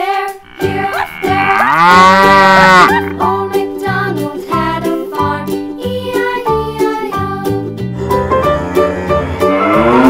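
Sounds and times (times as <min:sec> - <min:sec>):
cow mooing: 0:00.3 - 0:03.2, 0:08.0 - 0:10.0.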